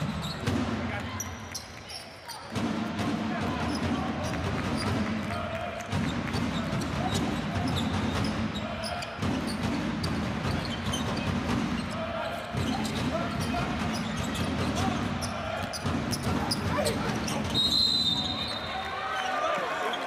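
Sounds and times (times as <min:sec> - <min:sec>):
sneaker squeaks: 0:00.0 - 0:02.6, 0:06.3 - 0:20.0.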